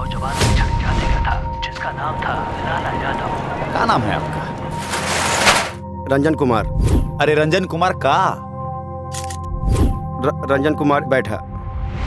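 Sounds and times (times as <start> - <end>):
dialogue: 0.1 - 5.2.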